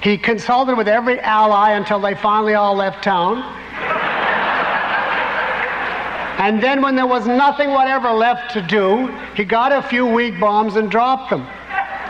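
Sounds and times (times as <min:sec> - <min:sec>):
lecturer speaking: 0:00.0 - 0:03.9, 0:05.8 - 0:12.0
audience laughing: 0:03.7 - 0:06.4, 0:11.5 - 0:12.0.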